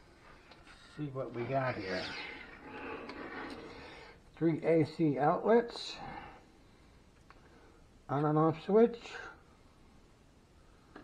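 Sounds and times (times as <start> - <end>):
metal box scraping on wooden table: 1.7 - 3.9.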